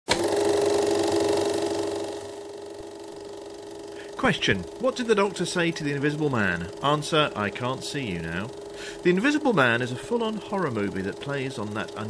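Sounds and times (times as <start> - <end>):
electronic buzzing drone: 0.2 - 12.0.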